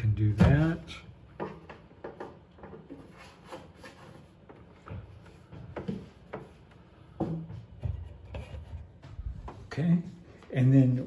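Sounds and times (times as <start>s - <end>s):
faint handling knocks and rubbing: 0.4s - 9.8s.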